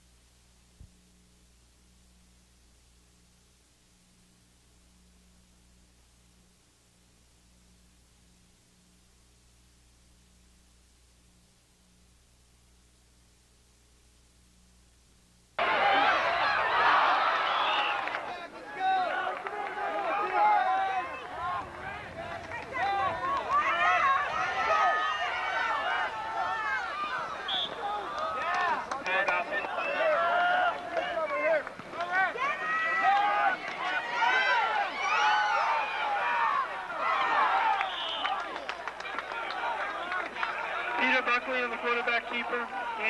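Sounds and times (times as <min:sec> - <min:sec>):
spectators talking and calling out: 0:15.6 - 0:43.0.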